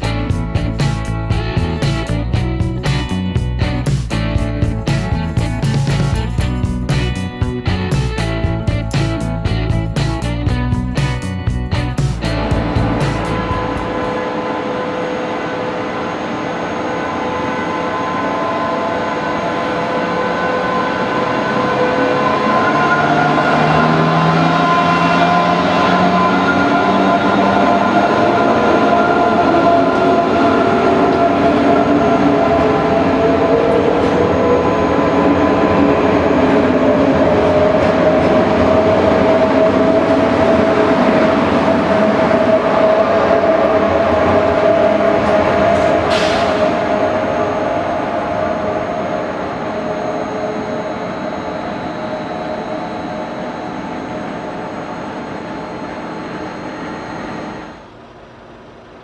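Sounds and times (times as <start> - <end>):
train wheels rumbling: 0.0 - 53.2
train traction motor whine: 0.0 - 59.0.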